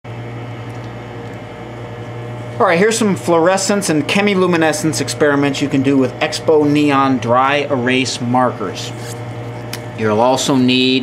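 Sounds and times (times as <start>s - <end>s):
low mechanical hum with hiss: 0.1s - 11.0s.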